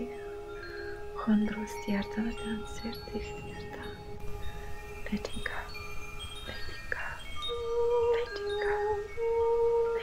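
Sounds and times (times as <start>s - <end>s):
low sustained tone: 0.0s - 10.0s
wind chimes ringing: 0.0s - 10.0s.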